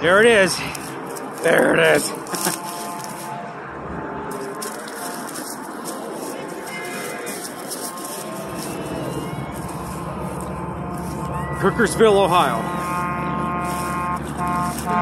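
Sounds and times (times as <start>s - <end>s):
distant traffic rush: 0.0s - 15.0s.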